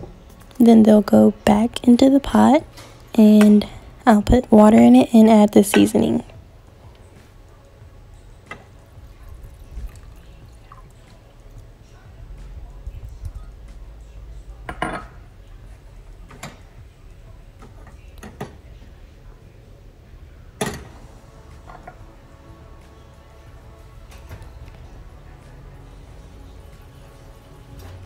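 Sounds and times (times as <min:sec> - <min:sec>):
water pouring into saucepan: 0:08.8 - 0:11.7.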